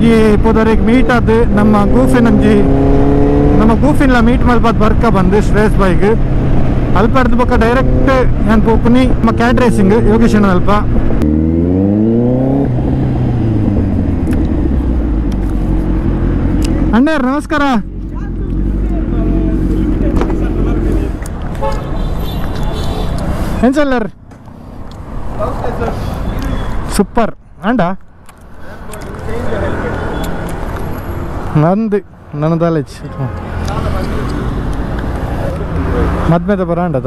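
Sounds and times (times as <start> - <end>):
traffic passing on road: 0.0 - 37.0
vehicle horn toot: 21.6 - 23.2.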